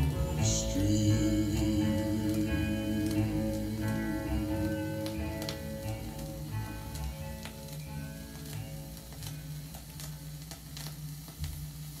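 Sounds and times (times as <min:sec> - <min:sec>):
low steady hum: 0:00.0 - 0:12.0
vinyl crackle and hiss: 0:00.0 - 0:12.0.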